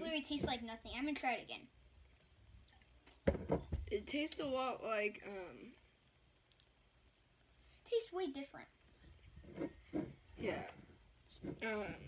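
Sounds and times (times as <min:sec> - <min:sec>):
boy speaking: 0:00.0 - 0:01.8, 0:03.9 - 0:05.8, 0:07.9 - 0:08.8, 0:10.4 - 0:10.8.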